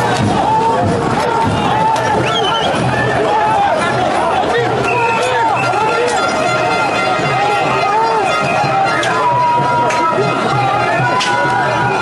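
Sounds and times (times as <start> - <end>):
crowd of protesters calling out: 0.0 - 12.0.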